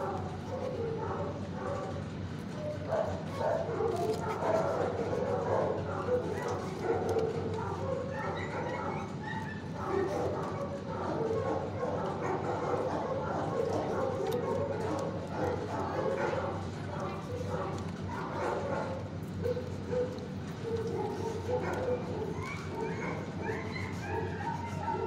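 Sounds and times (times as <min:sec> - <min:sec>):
dogs barking: 0:00.0 - 0:25.0.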